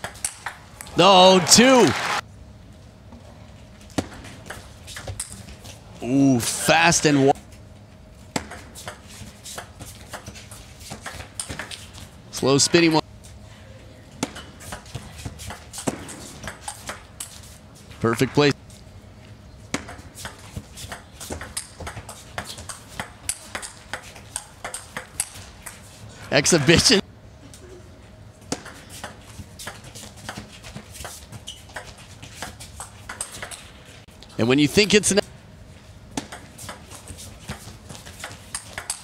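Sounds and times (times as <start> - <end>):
low arena background: 0.0 - 39.0.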